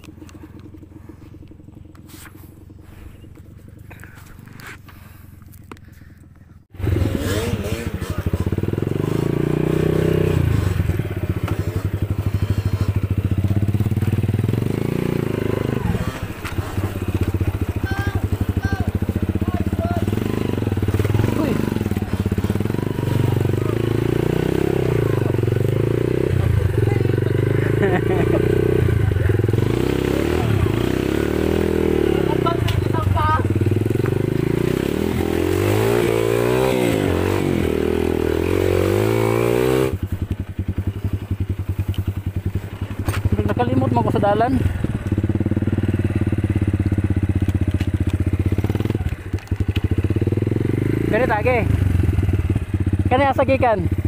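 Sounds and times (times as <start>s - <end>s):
dirt bike engine running: 0.0s - 54.0s.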